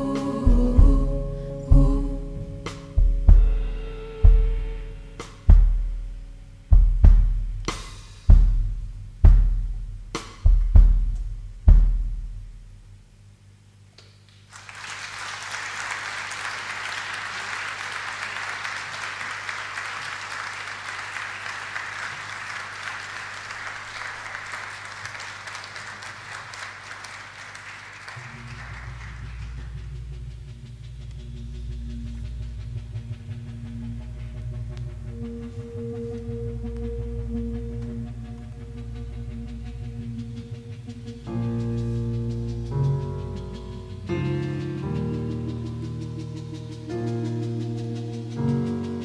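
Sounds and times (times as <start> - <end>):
low drone of held musical tones: 0.0 - 13.9, 14.5 - 49.0
audience applauding: 14.3 - 30.1.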